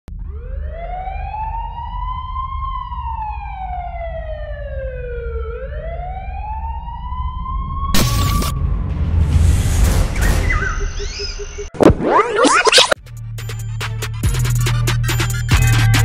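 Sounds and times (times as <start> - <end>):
siren-like wail: 0.1 - 8.9, 10.2 - 13.0
steady low rumble: 7.2 - 11.6
sudden burst of noise: 8.0 - 13.0.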